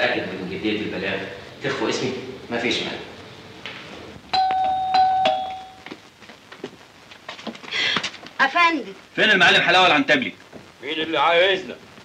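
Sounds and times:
doorbell chiming ding-dong: 4.4s - 5.8s.

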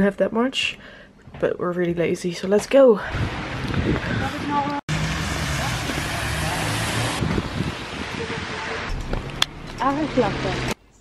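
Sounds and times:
hard rain on street: 4.9s - 8.9s
low hum: 8.9s - 10.8s.

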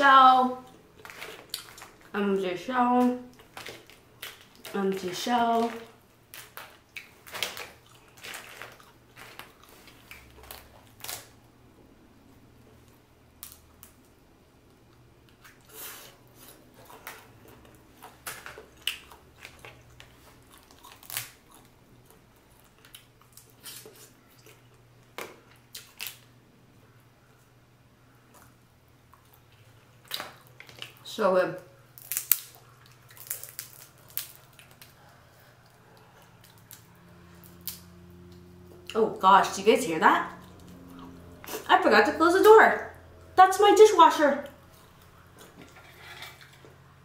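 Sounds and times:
faint low hum: 0.0s - 47.0s
chewing: 0.6s - 2.1s, 3.3s - 11.4s, 14.9s - 26.3s, 28.3s - 31.0s, 32.1s - 39.0s, 40.3s - 41.7s, 44.5s - 46.8s
shells cracking and snapping: 13.4s - 14.1s, 18.0s - 21.5s, 31.9s - 35.0s, 36.4s - 37.9s.

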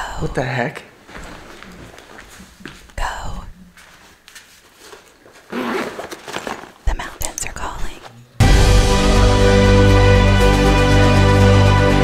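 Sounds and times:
backpack rustling and clicking: 4.3s - 7.4s
background music with low notes: 8.4s - 12.0s.

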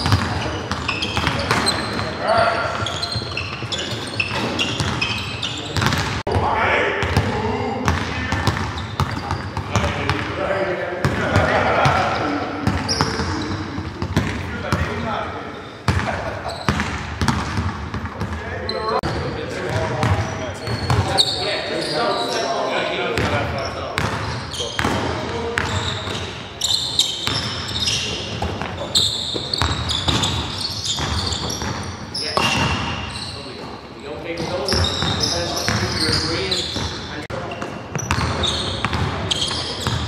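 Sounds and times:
basketballs bouncing on hardwood: 0.0s - 2.1s, 2.7s - 5.2s, 5.8s - 6.4s, 7.0s - 10.3s, 11.0s - 14.9s, 15.9s - 18.4s, 24.0s - 26.2s, 27.2s - 33.0s, 37.9s - 40.0s
sneaker squeaks: 0.0s - 6.2s, 7.0s - 10.3s, 11.1s - 40.0s
players' voices echoing: 0.0s - 40.0s.

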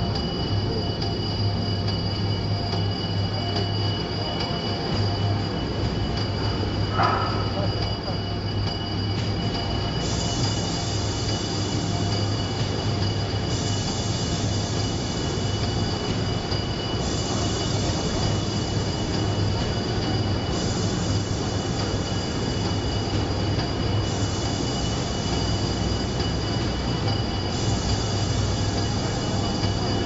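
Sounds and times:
continuous high-pitched whine: 0.0s - 30.0s.

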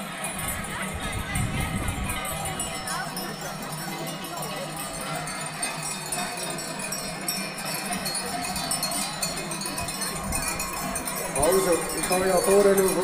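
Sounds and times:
crowd voices: 0.0s - 13.0s
goat bells ringing: 0.0s - 13.0s.

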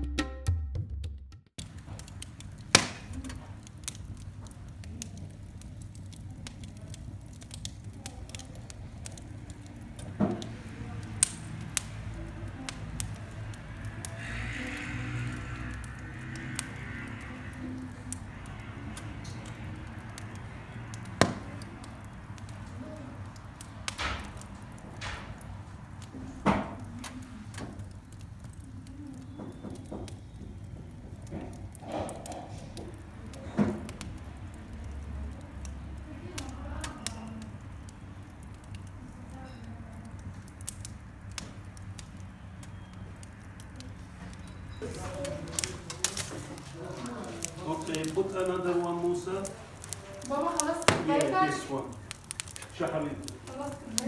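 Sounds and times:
wood fire crackling: 1.6s - 54.0s.

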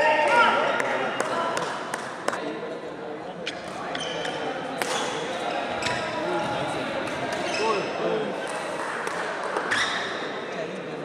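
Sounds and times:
murmur of voices: 0.0s - 11.0s
racket hitting shuttlecock: 3.6s - 5.2s
shoes squeaking on court: 7.3s - 7.9s.

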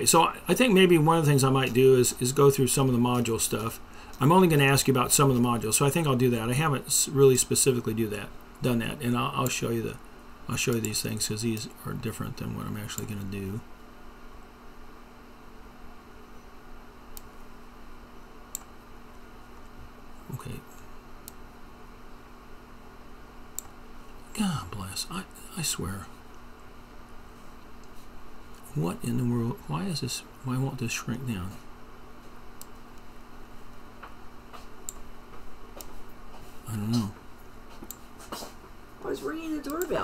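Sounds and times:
low room hum: 0.0s - 40.0s
computer mouse clicks: 18.5s - 18.7s, 37.8s - 38.0s.

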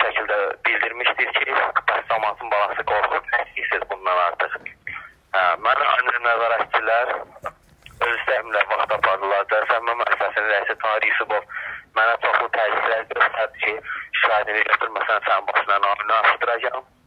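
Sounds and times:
man speaking on phone: 0.0s - 17.0s.

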